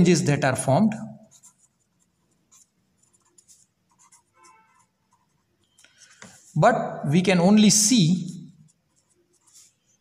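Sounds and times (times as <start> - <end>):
pen scratching on paper: 1.2 - 6.6, 8.5 - 10.0.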